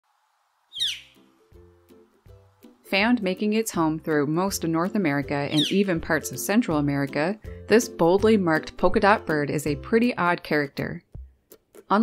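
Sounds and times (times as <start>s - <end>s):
background music low notes: 0.1s - 12.0s
loud bird call: 0.7s - 1.2s, 5.6s - 5.9s.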